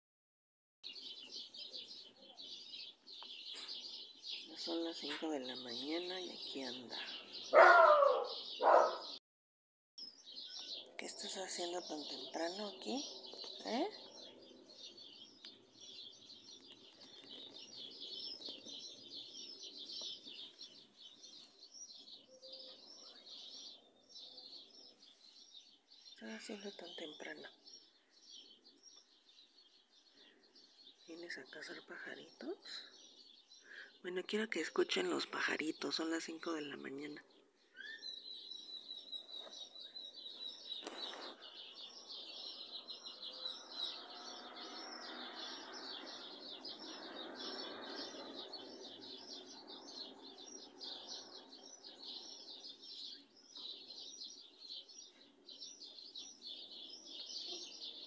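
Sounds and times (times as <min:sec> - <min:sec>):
small birds chirping: 0:00.8 - 0:09.2, 0:10.0 - 0:58.0.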